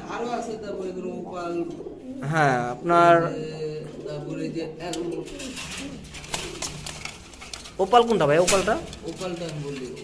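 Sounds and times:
pigeons cooing softly: 0.0s - 10.0s.

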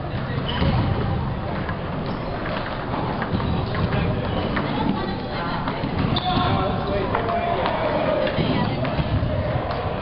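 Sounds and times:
chatter of voices: 0.0s - 10.0s.

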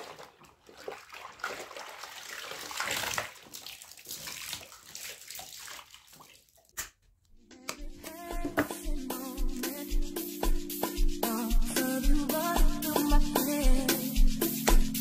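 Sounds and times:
water sloshing in a washbasin: 0.0s - 7.0s.

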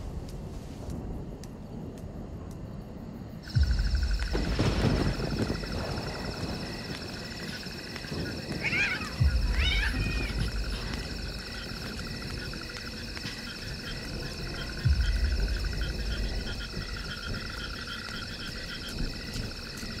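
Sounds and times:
insects chirping: 0.0s - 20.0s
deep low thumps: 3.5s - 7.2s, 9.2s - 17.9s
short wavering animal cries: 8.6s - 10.5s.

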